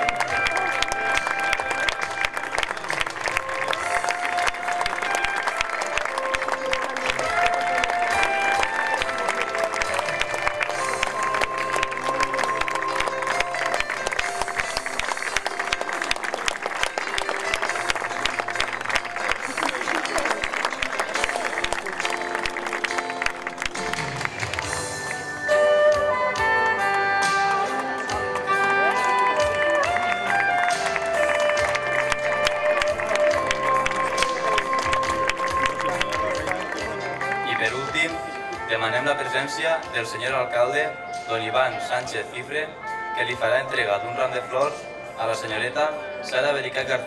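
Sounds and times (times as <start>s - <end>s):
audience applauding: 0.0s - 25.6s, 26.4s - 38.0s.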